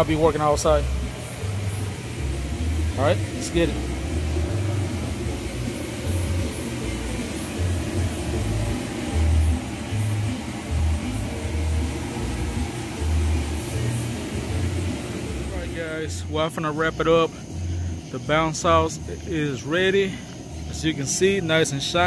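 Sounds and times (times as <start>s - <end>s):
inflator blower running: 0.0s - 22.0s.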